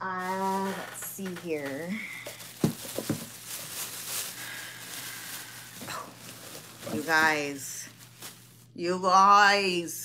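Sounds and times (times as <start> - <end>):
plastic bag rustling: 0.0 - 8.8.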